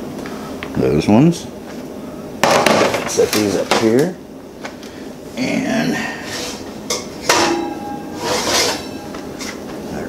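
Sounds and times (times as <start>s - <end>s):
metal sliding scrape: 6.2s - 6.7s, 7.9s - 9.6s
sharp metallic clank: 7.2s - 9.5s.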